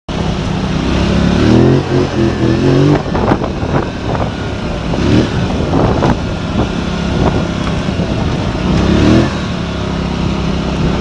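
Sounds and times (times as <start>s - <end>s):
quad bike engine running: 0.1s - 11.0s
wind noise: 0.4s - 11.0s.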